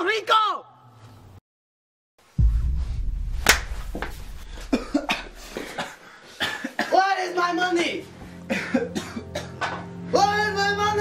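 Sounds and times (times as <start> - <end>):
low rumble: 2.4 - 5.9
man coughing and gasping: 4.5 - 7.1, 8.5 - 9.8.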